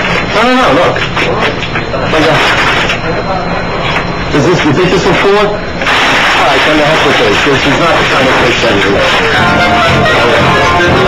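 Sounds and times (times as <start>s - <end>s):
rushing background noise: 0.0s - 11.0s
indistinct voices and chatter: 0.3s - 11.0s.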